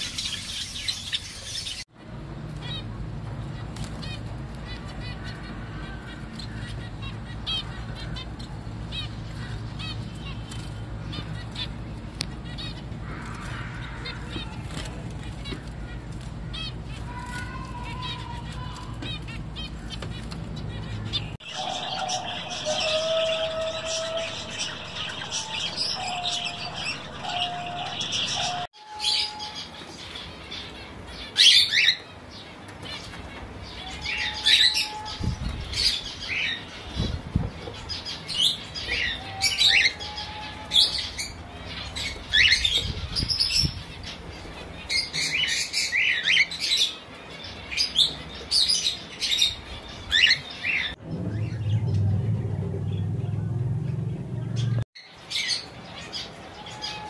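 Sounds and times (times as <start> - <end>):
sparrows chattering: 0.0 - 57.0.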